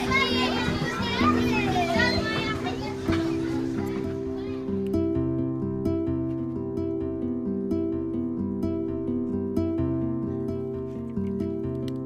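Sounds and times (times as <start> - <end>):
children calling and chattering: 0.0 - 5.1
music of held notes: 0.0 - 12.0.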